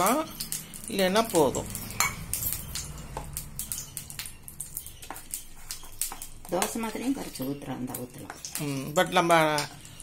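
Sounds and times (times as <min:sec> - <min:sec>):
spoon stirring batter in bowl: 0:00.0 - 0:10.0
spoon clicking and scraping bowl: 0:01.7 - 0:10.0.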